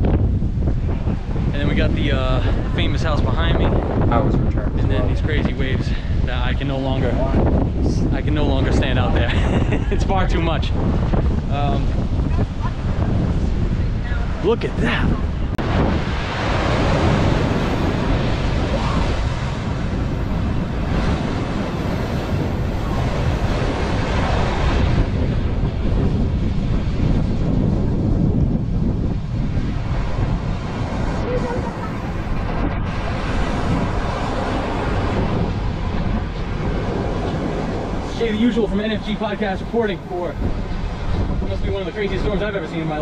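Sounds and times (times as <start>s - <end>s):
wind gusting on microphone: 0.0s - 43.0s
surf breaking against rocks: 10.3s - 43.0s.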